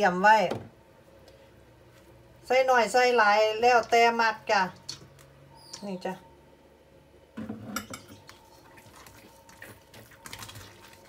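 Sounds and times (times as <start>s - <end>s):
utensil clinking on steel bowl: 7.6s - 8.3s.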